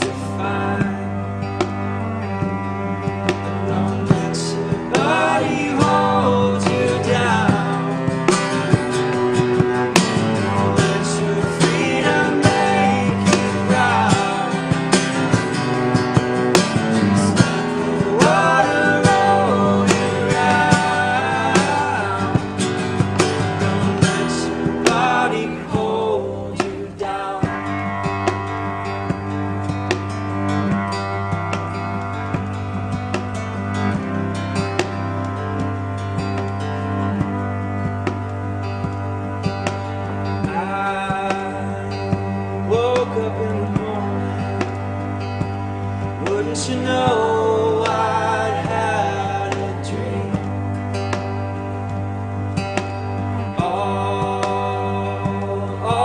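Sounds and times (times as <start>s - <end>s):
acoustic guitar strumming: 0.0s - 56.0s
box drum keeping time: 0.0s - 56.0s
cello bowed: 0.0s - 56.0s
voices singing in harmony: 0.0s - 56.0s.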